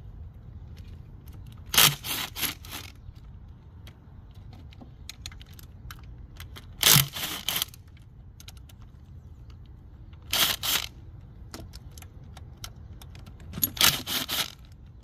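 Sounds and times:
cordless drill spinning: 13.8 - 14.6.

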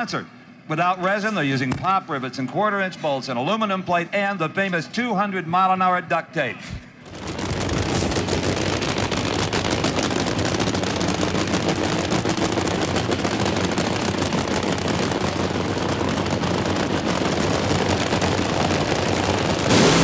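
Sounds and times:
dragster engines crackling: 7.0 - 20.0.

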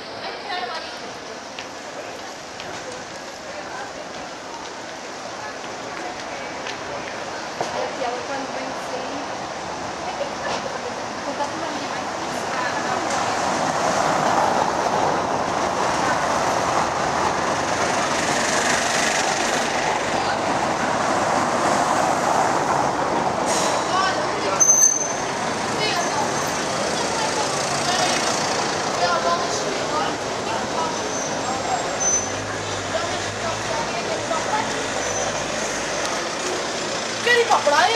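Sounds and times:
street voices: 0.0 - 37.9
tram rolling along rails: 0.0 - 37.9.

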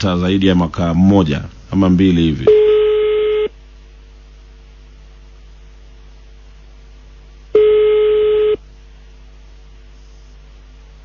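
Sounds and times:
telephone ringback beep: 7.6 - 8.6.

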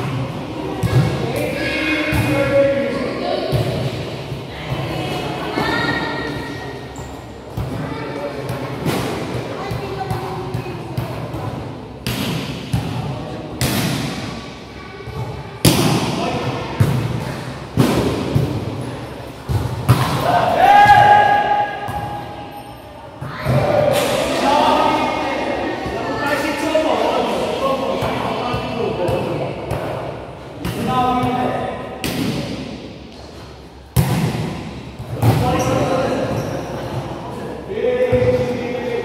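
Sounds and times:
players' voices: 0.0 - 39.0
volleyball thuds echoing: 33.9 - 35.8.

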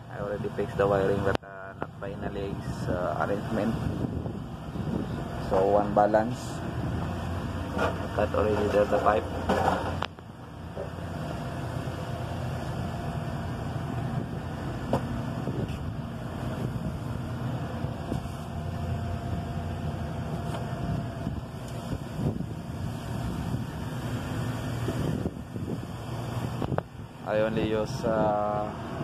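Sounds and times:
air conditioning machinery humming: 0.0 - 29.0
faint steady whine: 0.0 - 29.0.

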